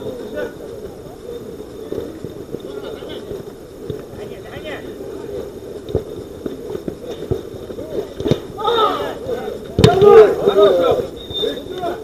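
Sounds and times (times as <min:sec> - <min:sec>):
football being kicked: 0:06.8 - 0:08.6, 0:09.7 - 0:10.5
players shouting: 0:07.7 - 0:12.0.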